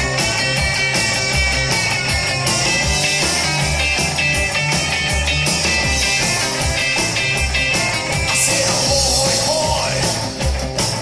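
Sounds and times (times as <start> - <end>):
rock music with electric guitars: 0.0 - 11.0.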